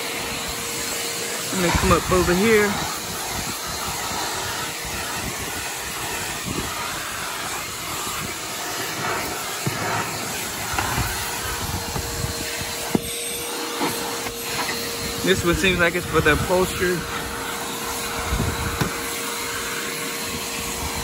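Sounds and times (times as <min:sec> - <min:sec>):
shop vacuum running: 0:00.0 - 0:21.0.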